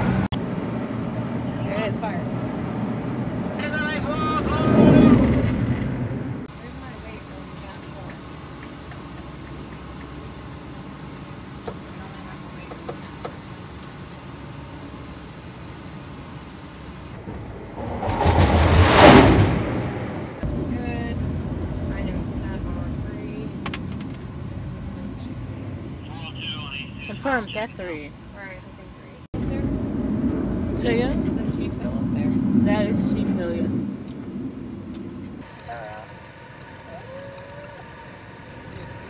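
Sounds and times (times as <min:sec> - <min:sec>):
jet engine roar: 0:00.0 - 0:07.9, 0:16.4 - 0:27.8, 0:29.3 - 0:36.8
steady deck rumble: 0:17.0 - 0:27.1, 0:29.3 - 0:35.6.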